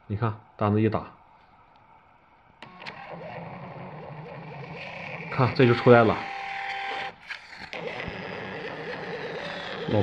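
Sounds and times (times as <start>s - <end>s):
printer feed motor whirring: 2.6s - 10.0s.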